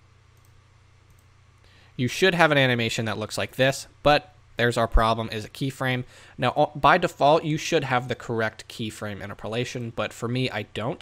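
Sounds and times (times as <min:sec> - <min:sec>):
low steady hum: 0:00.0 - 0:11.0
computer mouse clicks: 0:00.3 - 0:01.3.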